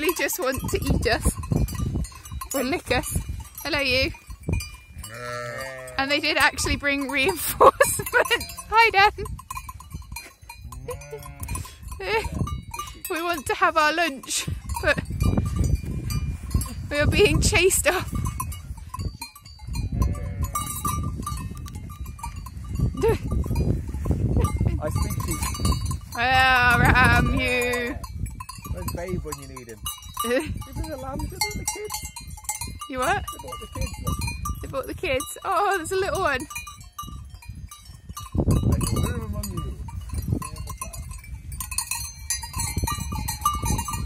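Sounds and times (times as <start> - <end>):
sheep bells clinking: 0.0 - 44.0
sheep bleating: 5.1 - 6.2, 10.8 - 11.7, 20.0 - 20.8.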